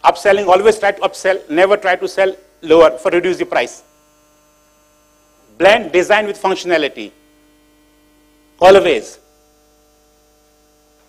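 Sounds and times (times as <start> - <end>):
man speaking: 0.0 - 3.9, 5.5 - 7.2, 8.6 - 9.2
electrical mains hum: 0.0 - 11.0.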